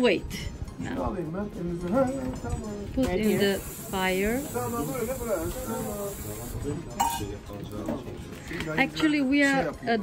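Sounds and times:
metal pot clinking on stove: 7.0s - 7.4s.

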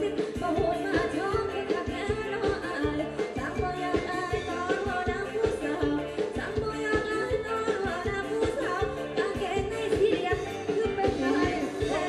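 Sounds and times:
live dance band music: 0.0s - 12.0s
person singing: 0.0s - 12.0s
steady drum beat: 0.0s - 12.0s.

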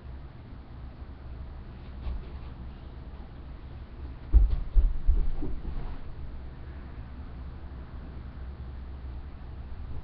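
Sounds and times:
low muffled thumps: 4.2s - 6.1s.

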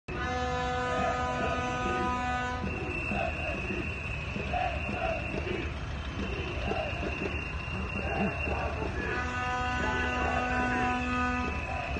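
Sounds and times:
indistinct voices: 0.1s - 11.9s
steady pitched hum: 0.1s - 11.9s
street noise: 0.1s - 11.9s
thin high whine: 0.8s - 11.9s.

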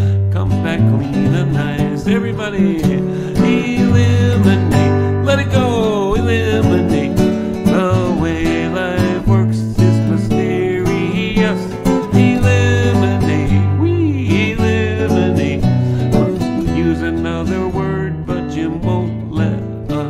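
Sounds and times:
man singing: 0.0s - 20.0s
nylon-string guitar playing: 0.0s - 20.0s.

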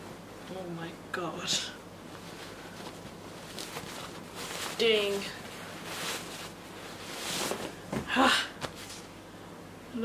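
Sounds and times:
plastic bag rustling: 2.2s - 9.1s.

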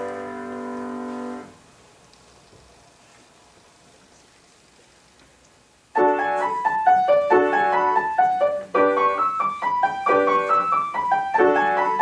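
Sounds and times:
piano chord: 0.0s - 1.6s, 6.0s - 12.0s.

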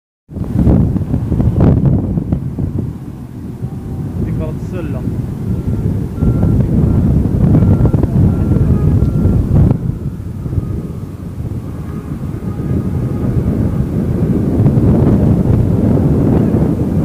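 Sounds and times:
wind buffeting microphone: 0.3s - 17.0s.

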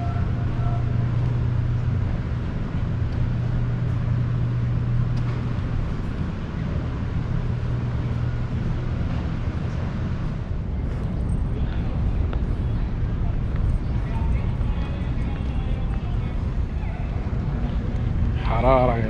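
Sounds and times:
air conditioner hum: 0.0s - 19.0s.

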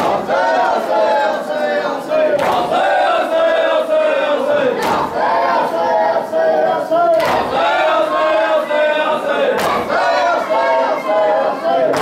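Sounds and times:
crowd of men chanting: 0.0s - 12.0s
chest-beating slaps: 4.8s - 5.2s, 7.1s - 7.6s, 9.6s - 9.9s.

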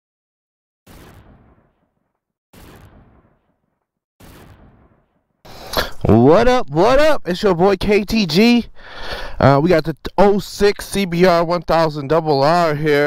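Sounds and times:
impact hits: 2.6s - 6.2s.

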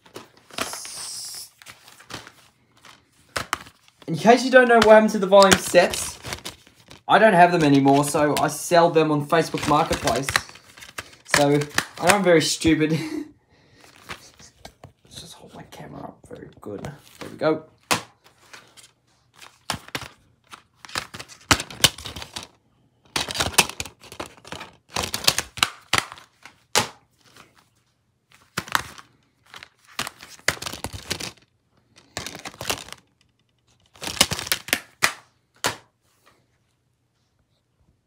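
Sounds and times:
plastic cases clicking and clattering: 19.5s - 26.9s, 32.0s - 35.1s.

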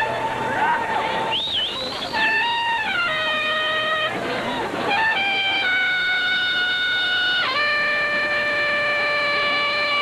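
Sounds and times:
marching band wind instruments: 1.2s - 10.0s.

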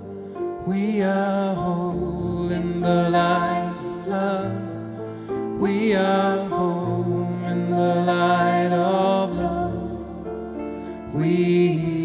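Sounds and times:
piano: 0.0s - 12.0s.

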